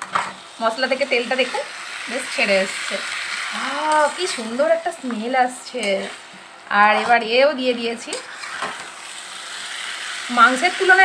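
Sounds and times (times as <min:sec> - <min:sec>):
potatoes sizzling in oil: 0:00.0 - 0:11.0.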